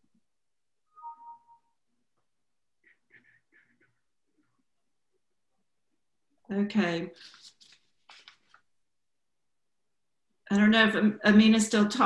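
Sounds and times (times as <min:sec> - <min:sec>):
electronic two-note tone: 0:00.9 - 0:01.7.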